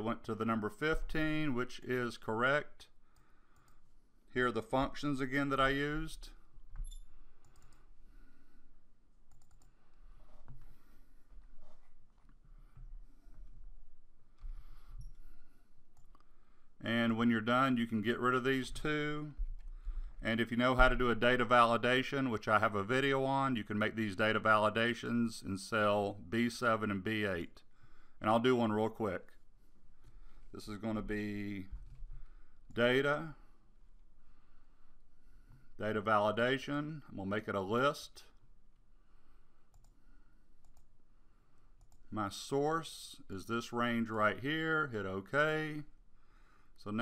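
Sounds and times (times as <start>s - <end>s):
man talking: 0.0s - 3.0s, 4.3s - 6.4s, 16.8s - 19.4s, 20.2s - 29.4s, 30.5s - 31.8s, 32.7s - 33.4s, 35.8s - 38.4s, 42.1s - 46.0s, 46.8s - 47.0s
computer mouse clicks: 6.8s - 7.9s, 9.3s - 10.6s, 39.7s - 40.0s, 40.6s - 40.9s.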